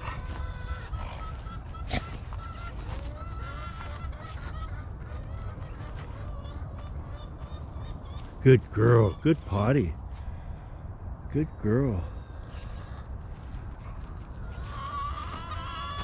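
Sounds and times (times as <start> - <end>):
distant birds calling: 0.0 - 16.0.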